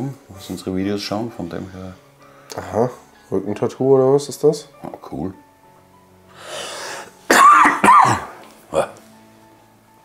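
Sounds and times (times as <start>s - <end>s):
man coughing: 7.3s - 9.0s.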